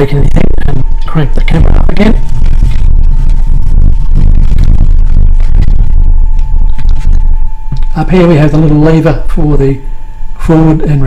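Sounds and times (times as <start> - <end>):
low machine rumble: 0.0 - 11.0
thin constant machine whine: 0.0 - 11.0.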